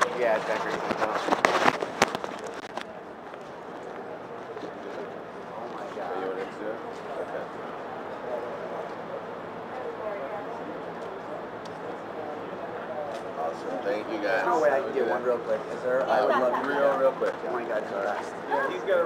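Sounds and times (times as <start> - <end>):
people talking quietly: 0.0 - 19.0.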